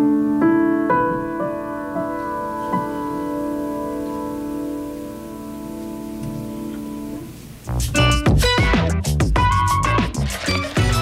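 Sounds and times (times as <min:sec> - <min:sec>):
grand piano playing slowly: 0:00.0 - 0:08.8.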